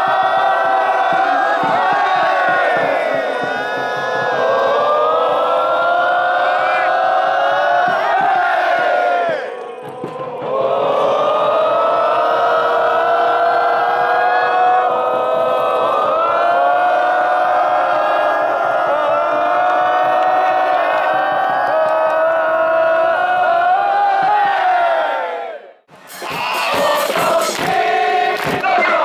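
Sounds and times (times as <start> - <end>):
crowd singing a chant: 0.0 - 29.0.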